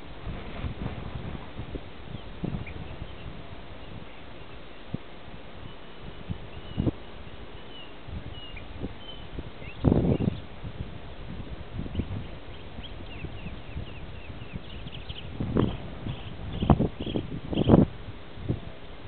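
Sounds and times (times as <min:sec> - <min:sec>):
low thuds and rumbles: 0:00.2 - 0:02.7
small birds chirping: 0:05.6 - 0:10.5, 0:11.9 - 0:17.8.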